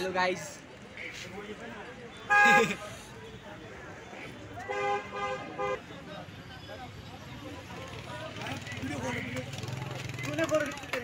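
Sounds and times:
vehicle horns honking: 2.1s - 2.8s, 4.6s - 6.0s.

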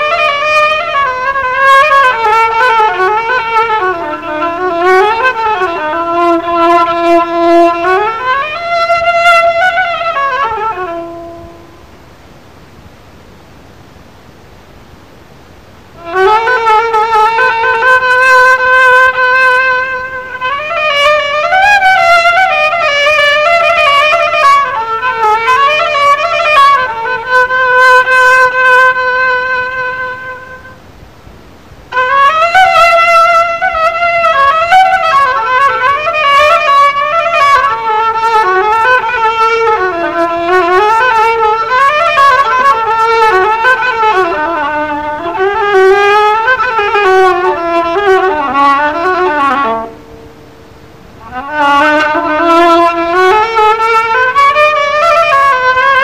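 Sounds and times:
solo melodic instrument improvising: 0.0s - 12.0s, 15.9s - 30.8s, 31.9s - 56.0s.

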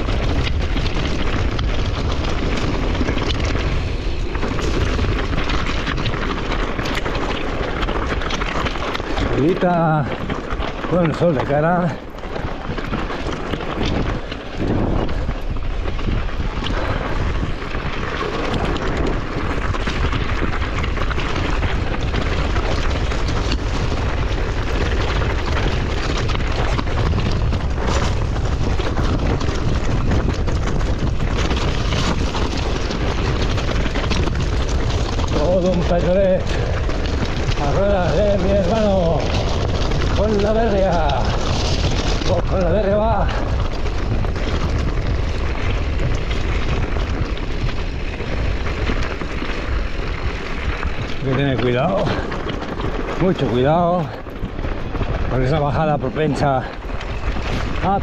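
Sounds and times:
bike tyres rattling over rock: 0.0s - 58.0s
wind buffeting microphone: 0.0s - 58.0s.

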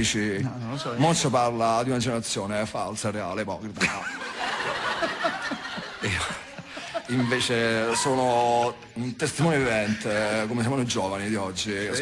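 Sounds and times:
people laughing: 3.8s - 8.4s.

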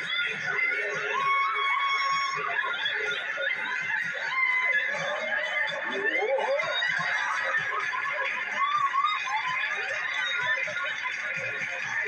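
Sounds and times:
dance music: 0.0s - 12.0s.

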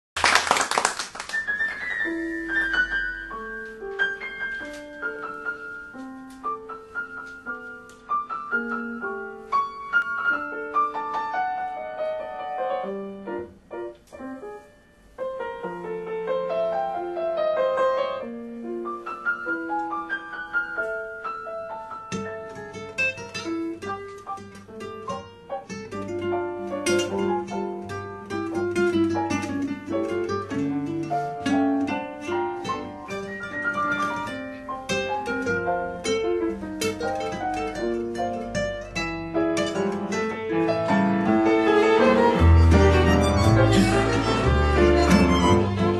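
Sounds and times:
piano playing a tango: 0.3s - 45.9s
plucked guitar notes: 34.0s - 45.9s.

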